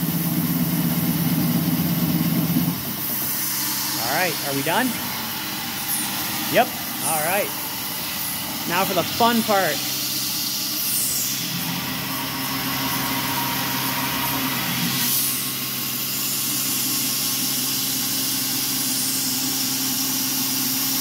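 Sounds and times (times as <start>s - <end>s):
mill spindle hum: 0.0s - 21.0s
air blast and coolant hiss: 2.2s - 21.0s.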